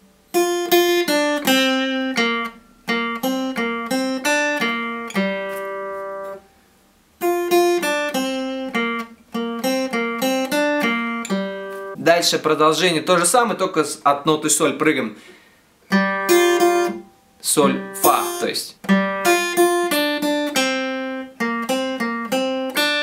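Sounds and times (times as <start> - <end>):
acoustic guitar melody: 0.0 - 13.3, 15.3 - 23.0.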